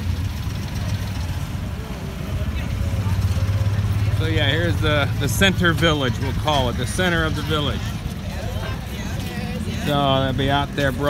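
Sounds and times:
faint voices of passers-by: 0.0 - 11.0
low engine hum: 0.0 - 11.0.

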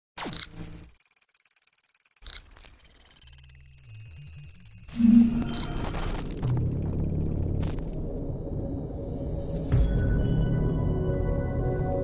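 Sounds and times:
electronic pulsing chatter: 0.3 - 8.0
high beeping tones: 0.3 - 8.1.

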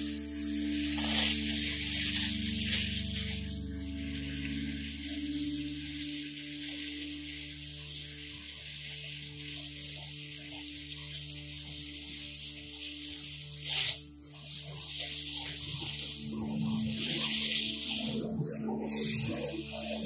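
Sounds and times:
hose nozzle spraying water: 0.0 - 20.0.

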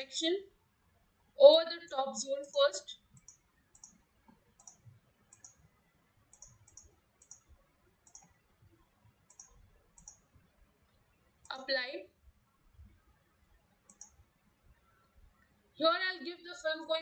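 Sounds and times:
computer mouse clicking: 2.5 - 8.4, 9.2 - 10.4, 13.7 - 14.3.

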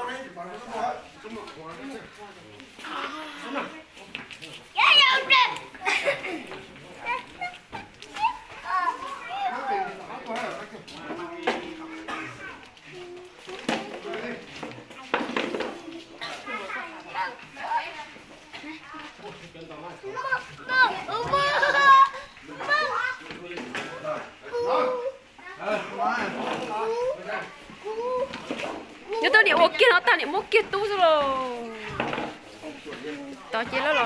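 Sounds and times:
children's voices: 4.8 - 10.1, 11.1 - 14.3, 15.6 - 19.3, 20.0 - 23.3, 26.7 - 31.7.

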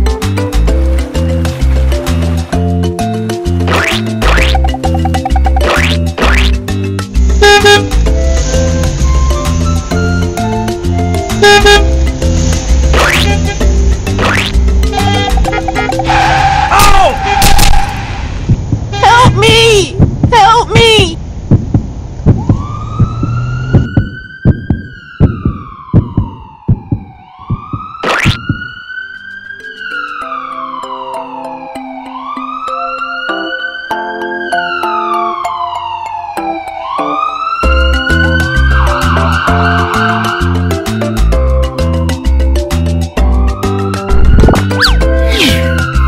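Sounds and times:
upbeat background music: 0.0 - 16.6, 26.9 - 46.0
cartoon siren wail: 22.4 - 40.8, 43.5 - 46.0.

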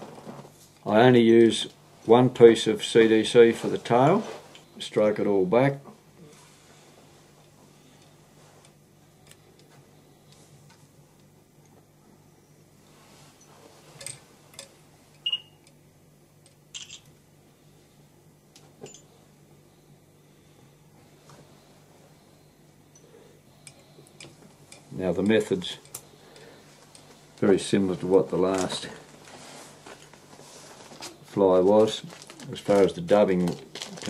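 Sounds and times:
low steady hum: 0.0 - 34.0
faint clicks and rustles: 23.6 - 34.0.

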